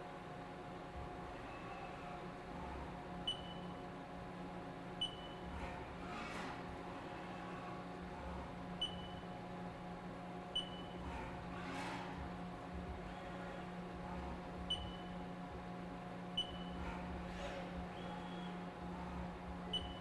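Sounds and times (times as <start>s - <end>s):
machine hum: 0.0s - 20.0s
short high beeps with clicks: 3.3s - 3.7s.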